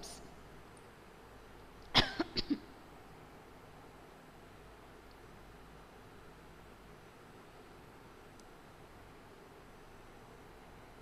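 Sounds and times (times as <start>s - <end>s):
woman coughing: 2.0s - 2.6s.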